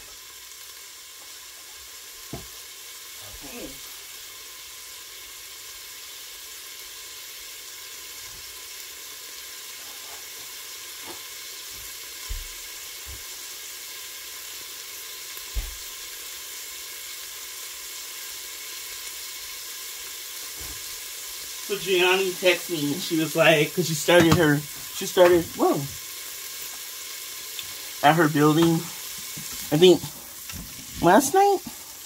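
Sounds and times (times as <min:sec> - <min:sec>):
beans sizzling in a pot: 0:00.0 - 0:32.0.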